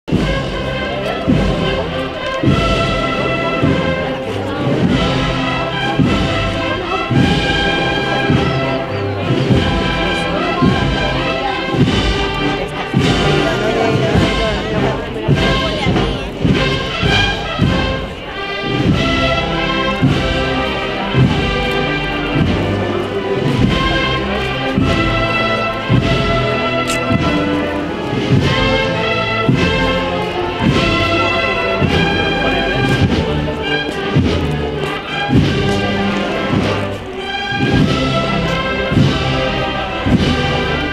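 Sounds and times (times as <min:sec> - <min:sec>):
brass and woodwinds playing march: 0:00.1 - 0:40.9
steady drum beat: 0:00.1 - 0:40.9.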